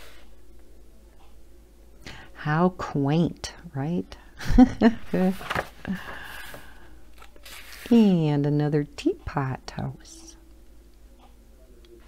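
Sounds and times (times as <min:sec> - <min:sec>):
hand brushing paper page: 0:04.9 - 0:06.6, 0:07.4 - 0:08.0.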